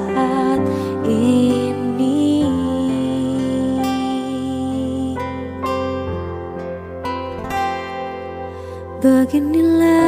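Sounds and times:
plucked acoustic guitar notes: 0:00.1 - 0:10.0.

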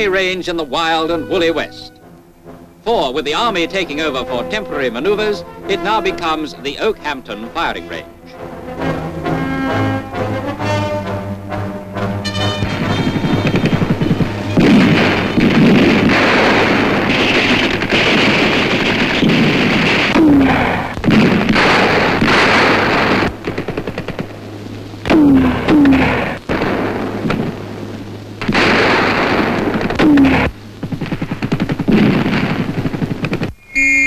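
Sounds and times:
steady low hum: 0:00.0 - 0:34.0
explosions: 0:12.5 - 0:33.7
rapid machine-gun fire: 0:12.6 - 0:27.6, 0:28.4 - 0:33.6
short falling whines: 0:33.6 - 0:34.0.

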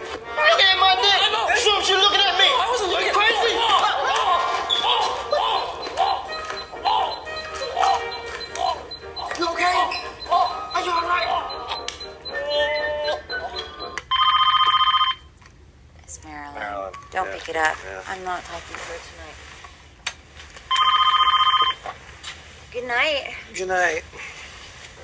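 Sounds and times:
telephone ringing: 0:00.7 - 0:15.3, 0:20.7 - 0:21.8.

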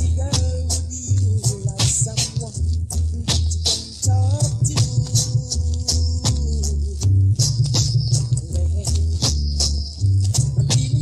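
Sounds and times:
deep heavy bass line: 0:00.0 - 0:11.0.

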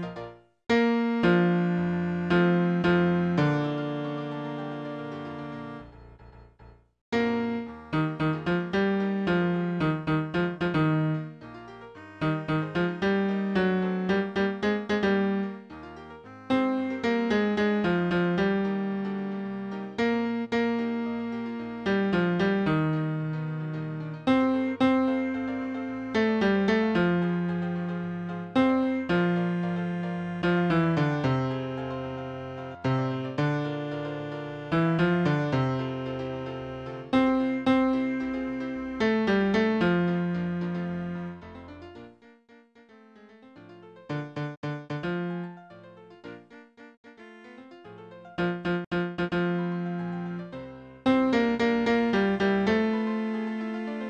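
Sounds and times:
piano repeated chords: 0:00.0 - 0:54.0
vocal melody on piano sounds: 0:00.0 - 0:54.0.

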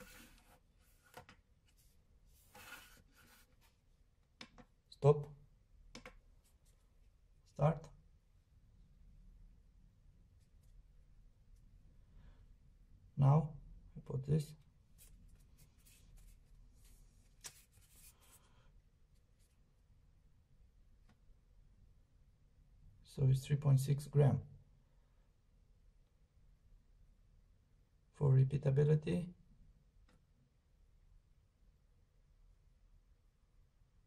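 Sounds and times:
soft rub of plastic scale: 0:00.0 - 0:03.8, 0:14.9 - 0:18.5.

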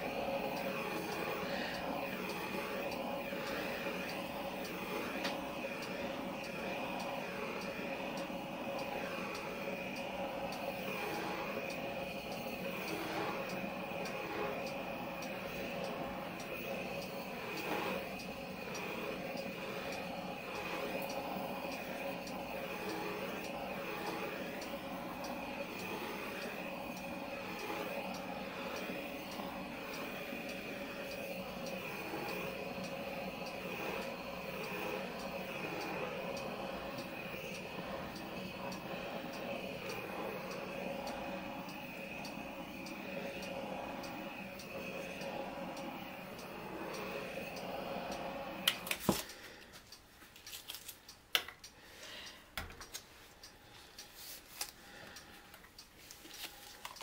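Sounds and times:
torch flame hissing: 0:00.0 - 0:49.9.

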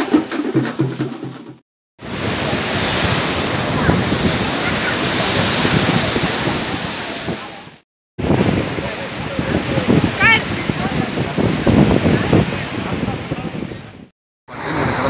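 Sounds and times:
surf breaking on a beach: 0:02.0 - 0:15.0
wind on microphone: 0:02.0 - 0:15.0.

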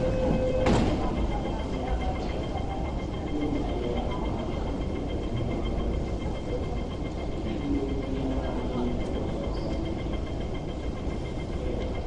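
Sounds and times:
faint pulsing high tones: 0:00.0 - 0:12.0
train rumble and hum: 0:00.0 - 0:12.0.

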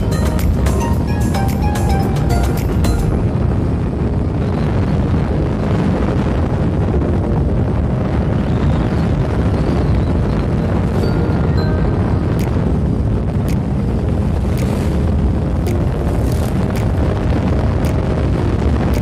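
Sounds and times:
background music with a beat: 0:00.0 - 0:03.4, 0:12.3 - 0:12.7, 0:14.6 - 0:14.8, 0:15.6 - 0:17.1
wind buffeting microphone: 0:00.0 - 0:19.0.

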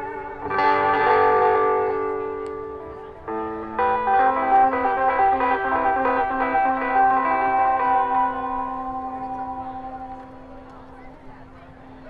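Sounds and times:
electric guitar picking: 0:00.0 - 0:11.9.

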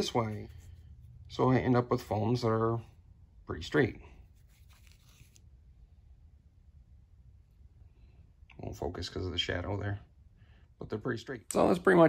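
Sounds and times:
faint rustling: 0:04.0 - 0:05.6.

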